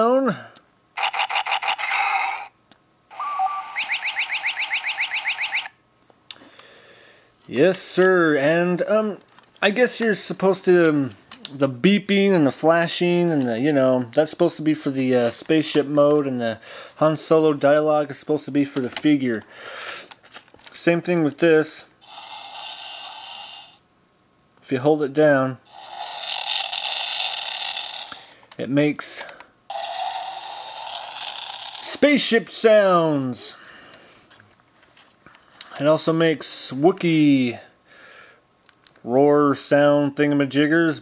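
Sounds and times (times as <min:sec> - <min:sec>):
electronic pulsing beeping: 0:03.1 - 0:05.7
electronic tone with pitch sweeps: 0:03.1 - 0:05.7.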